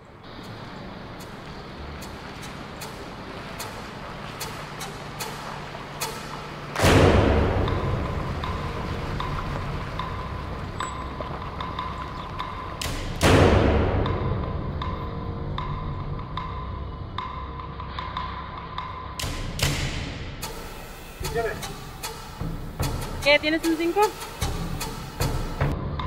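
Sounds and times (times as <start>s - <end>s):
booming drum hit: 6.8s - 9.2s, 12.8s - 14.9s
sharp ticking clicks: 7.6s - 25.7s.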